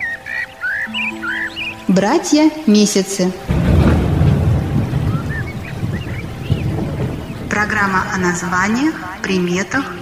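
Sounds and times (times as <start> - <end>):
bird chirps: 0.0 - 9.9
deep rumble: 3.3 - 9.8.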